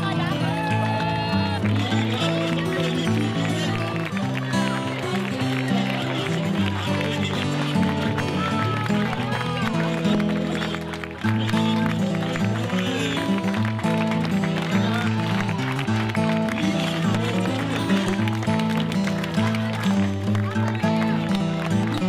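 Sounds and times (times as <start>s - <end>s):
crowd of voices: 0.0s - 22.0s
people clapping: 0.0s - 22.0s.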